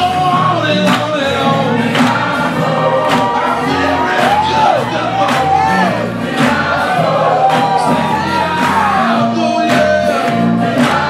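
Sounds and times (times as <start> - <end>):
electric bass guitar: 0.0 - 11.0
men's choir singing gospel: 0.0 - 11.0.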